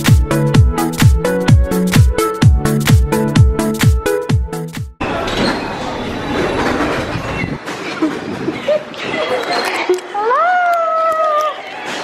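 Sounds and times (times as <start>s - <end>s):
underground train rumbling: 5.1s - 8.8s.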